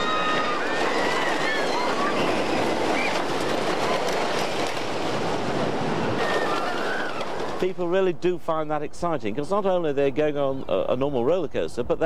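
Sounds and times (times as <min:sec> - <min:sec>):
roller coaster wheels rattling: 0:00.0 - 0:11.6.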